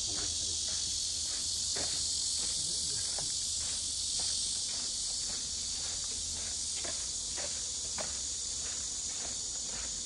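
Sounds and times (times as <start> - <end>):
cicada chorus buzzing: 0.0 - 10.0
footsteps on dirt path: 0.0 - 10.0.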